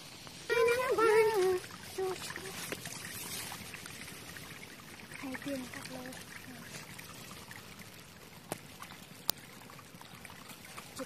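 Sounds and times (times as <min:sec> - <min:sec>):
muddy water trickling: 0:00.0 - 0:11.0.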